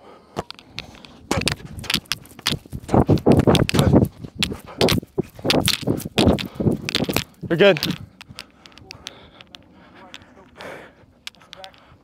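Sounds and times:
running footsteps on artificial turf: 0.8 - 8.4.

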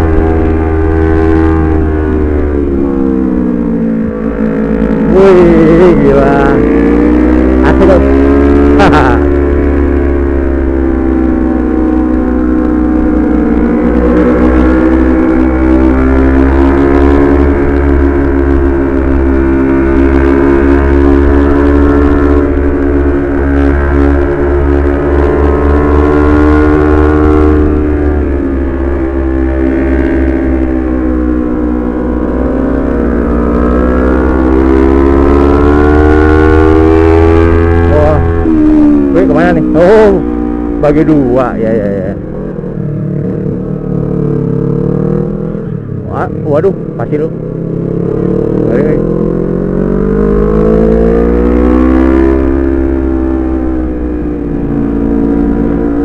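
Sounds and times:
motorcycle engine at high revs: 0.0 - 56.0.

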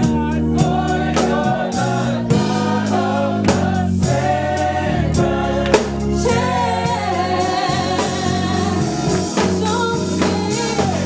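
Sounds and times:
drums: 0.0 - 11.0
electric keyboard: 0.0 - 11.0
gospel choir singing: 0.0 - 11.0
woman leading singing: 5.1 - 11.0.

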